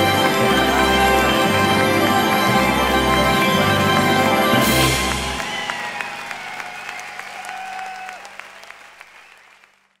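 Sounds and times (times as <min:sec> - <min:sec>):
audience applauding: 0:00.0 - 0:10.0
calls above clapping: 0:01.0 - 0:10.0.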